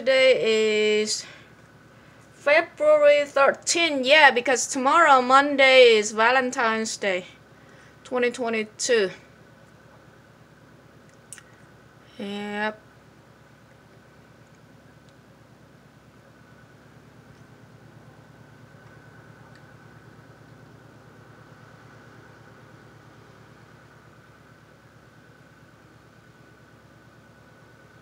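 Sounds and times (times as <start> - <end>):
mechanical hum: 0.0 - 28.0.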